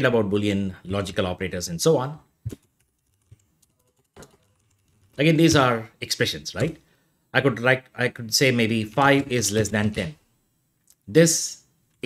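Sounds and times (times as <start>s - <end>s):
keystrokes on a computer keyboard: 2.5s - 5.2s.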